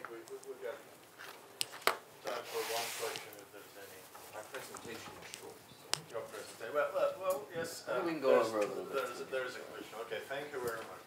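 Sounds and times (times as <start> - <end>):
rubbing rustling handling noise: 1.1 - 6.8.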